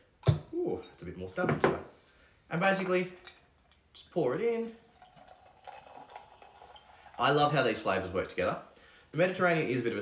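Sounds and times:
tonic water poured over ice: 4.6 - 7.9.

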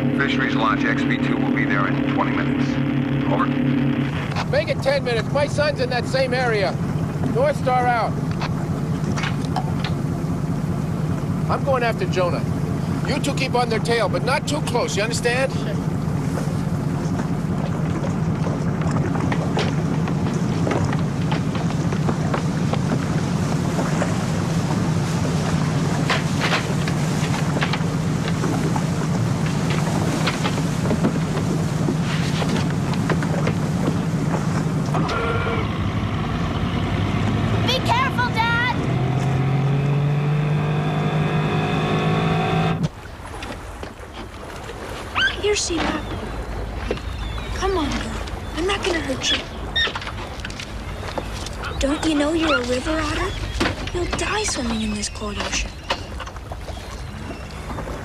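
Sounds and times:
wavering pitched tones: 0.0 - 4.3, 34.9 - 36.5
motorboat engine running: 0.0 - 58.0
water and wind noise: 0.0 - 58.0
water splashes: 0.0 - 58.0.

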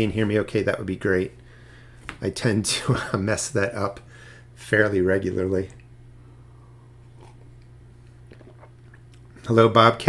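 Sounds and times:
low steady hum: 0.0 - 10.0
person sipping and swallowing: 7.1 - 9.4.

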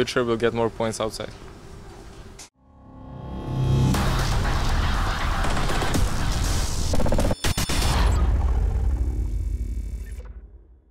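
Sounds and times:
logo sting music: 2.6 - 7.2.

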